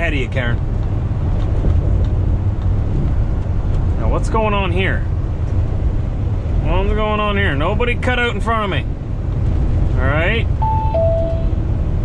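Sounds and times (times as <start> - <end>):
road noise: 0.0 - 12.0.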